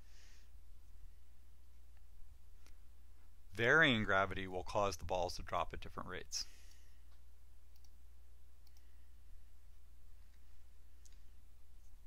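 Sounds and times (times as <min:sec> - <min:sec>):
low electrical hum and hiss: 0:00.0 - 0:12.0
computer mouse clicks: 0:06.7 - 0:08.0, 0:08.6 - 0:08.9, 0:10.2 - 0:11.3.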